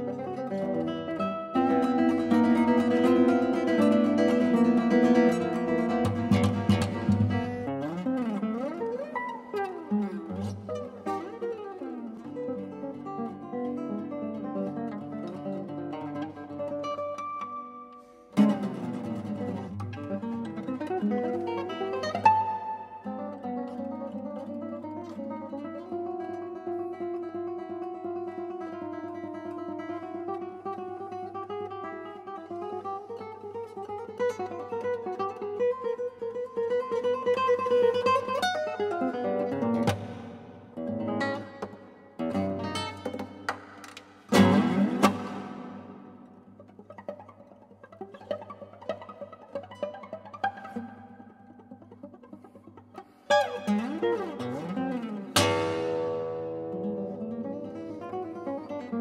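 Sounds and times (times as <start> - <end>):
classical guitar playing: 0.0 - 59.0.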